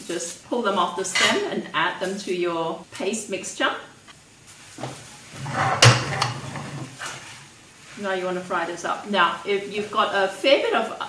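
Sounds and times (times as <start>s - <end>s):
utensil scraping frying pan: 4.7s - 7.5s.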